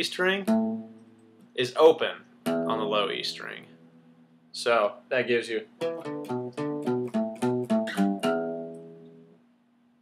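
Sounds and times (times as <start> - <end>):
acoustic guitar picking riff: 0.4 - 1.2, 2.4 - 4.0, 5.8 - 9.4.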